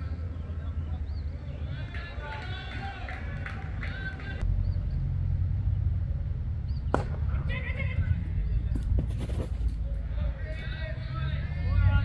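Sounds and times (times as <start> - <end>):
distant players calling: 0.0 - 5.1, 6.2 - 12.0.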